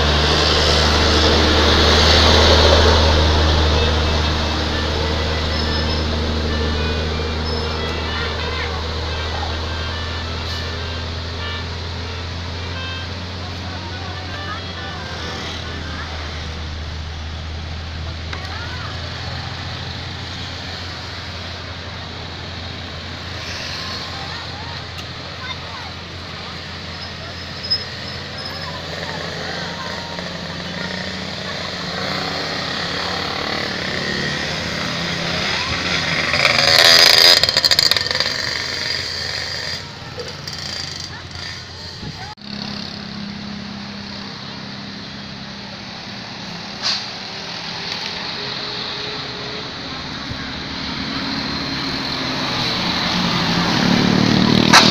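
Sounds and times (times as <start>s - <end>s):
people's voices: 0.0s - 54.9s
vehicle engines rumbling: 0.0s - 54.9s.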